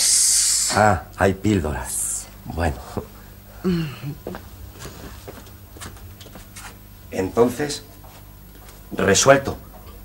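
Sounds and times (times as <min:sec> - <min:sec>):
low steady hum: 0:00.0 - 0:10.0
footsteps on stage floor: 0:04.2 - 0:06.8, 0:07.9 - 0:09.0.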